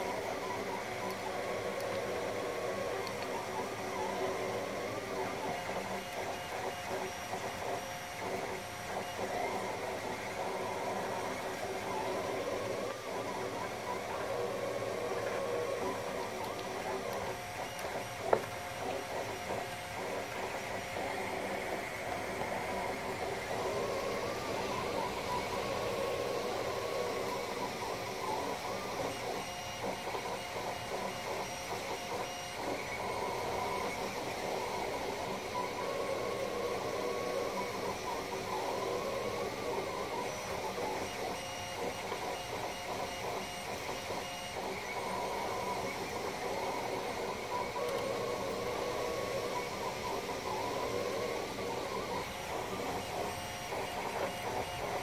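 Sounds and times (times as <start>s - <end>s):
cooling fans hissing: 0.0s - 55.0s
printer motors whining: 0.0s - 55.0s.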